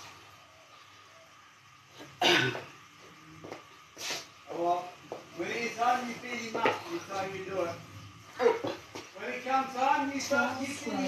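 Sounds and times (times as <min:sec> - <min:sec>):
woman coughing: 0:02.2 - 0:02.6.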